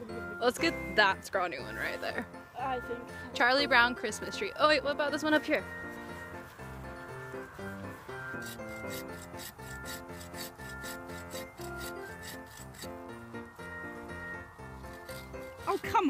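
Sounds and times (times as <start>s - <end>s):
background music: 0.0s - 16.0s
saw cutting wood: 8.1s - 13.1s, 14.7s - 16.0s.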